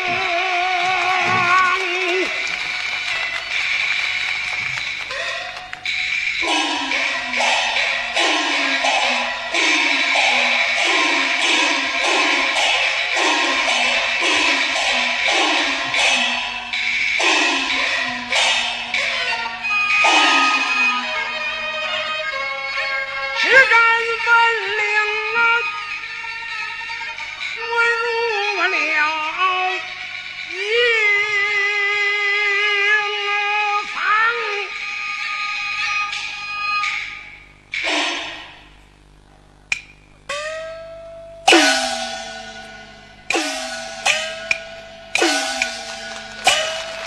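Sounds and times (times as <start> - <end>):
gong strokes dropping in pitch: 0.0 - 22.0, 37.7 - 38.8, 39.7 - 47.0
sharp drum or clapper strikes: 0.8 - 21.1, 39.7 - 40.6, 41.5 - 47.0
sung note with wide vibrato: 4.8 - 22.4, 37.3 - 47.0
high sustained melodic instruments: 39.8 - 47.0.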